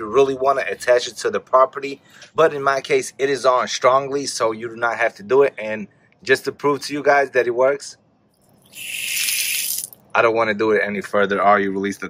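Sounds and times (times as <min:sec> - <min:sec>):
water gushing from faucet: 0:08.5 - 0:10.0.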